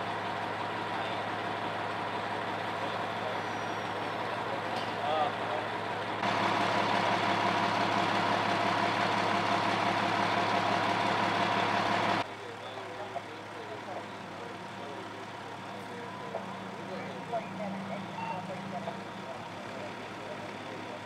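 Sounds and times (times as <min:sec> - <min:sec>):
fire engine idling: 0:00.0 - 0:21.0.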